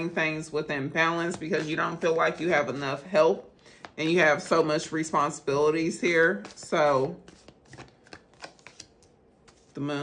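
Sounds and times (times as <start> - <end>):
cards being shuffled: 6.4 - 9.8.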